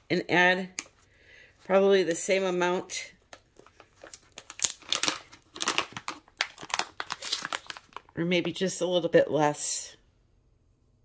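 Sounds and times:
plastic pouch crinkling: 3.2s - 8.6s.

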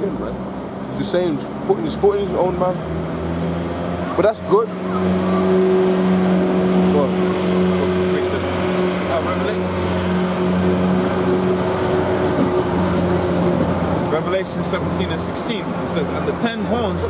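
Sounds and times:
faint voices: 4.0s - 5.8s.

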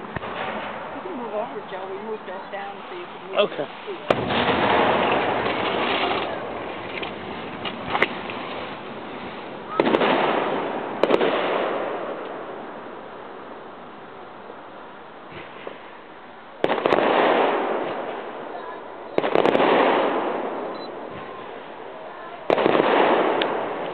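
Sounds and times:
fireworks booming with echo: 0.0s - 14.6s, 15.2s - 23.9s.

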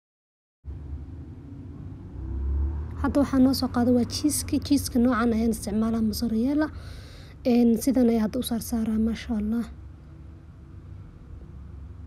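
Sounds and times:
low rumble: 0.7s - 7.0s.

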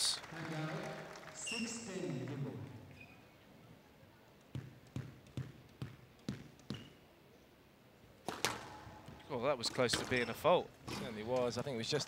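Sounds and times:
squash ball bouncing on wooden floor: 4.5s - 6.9s.

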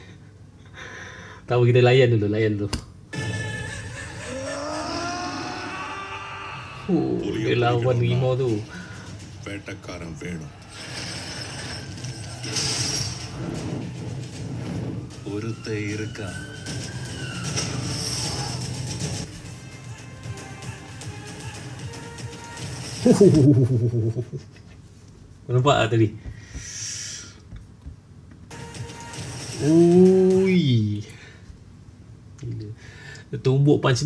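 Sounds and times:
rumbling film trailer sound effects: 3.1s - 24.2s, 28.5s - 30.9s.

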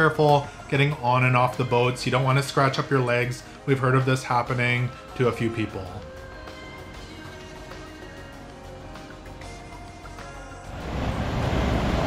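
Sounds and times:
background music: 0.0s - 12.0s
surf breaking: 10.7s - 12.0s.

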